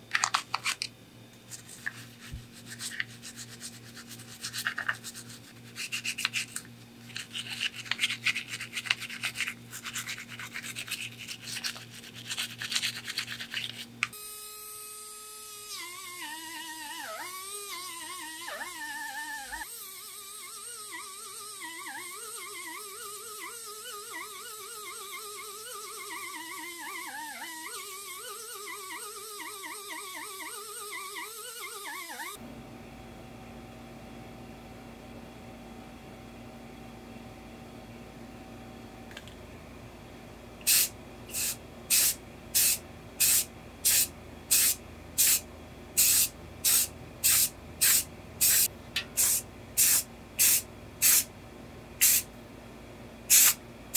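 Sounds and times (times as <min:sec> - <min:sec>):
toothbrush scrubbing in water: 0:01.5 - 0:14.0.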